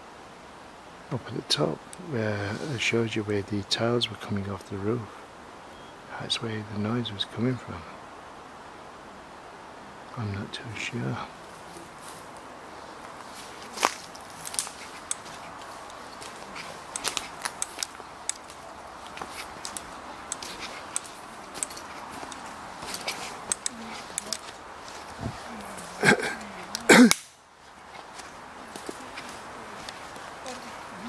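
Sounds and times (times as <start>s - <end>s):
steady background hiss: 0.0s - 31.0s
footsteps crunching over twigs: 11.3s - 31.0s.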